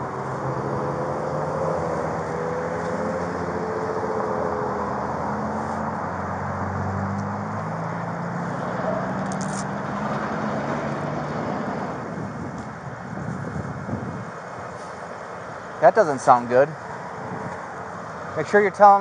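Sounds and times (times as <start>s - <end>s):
street traffic noise: 0.0s - 19.0s
vehicle engines running: 0.0s - 19.0s.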